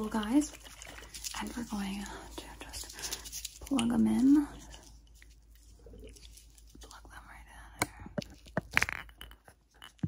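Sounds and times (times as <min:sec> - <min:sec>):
soft rustling: 0:00.0 - 0:08.6.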